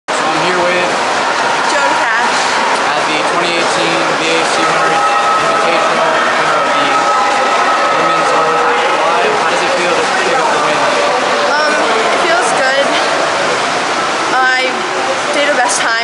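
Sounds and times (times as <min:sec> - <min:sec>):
noisy background din: 0:00.1 - 0:16.0
woman speaking: 0:01.7 - 0:02.6, 0:11.5 - 0:13.0, 0:14.3 - 0:16.0.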